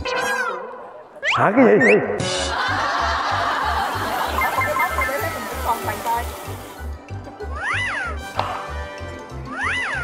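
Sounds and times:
background music with steady beat: 2.2 - 10.0.

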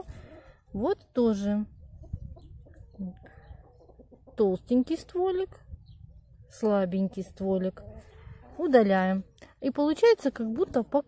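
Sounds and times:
hens clucking: 1.7 - 5.3.

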